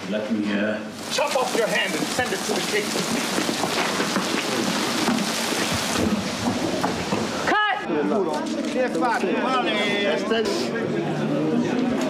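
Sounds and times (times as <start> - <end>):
people talking: 0.0 - 3.3, 7.5 - 12.0
heavy rain: 0.9 - 7.8.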